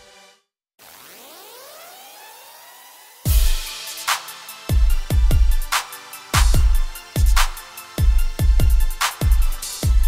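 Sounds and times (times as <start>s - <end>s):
dubstep-style music: 0.0s - 10.0s
rising electronic sweep: 0.8s - 3.3s.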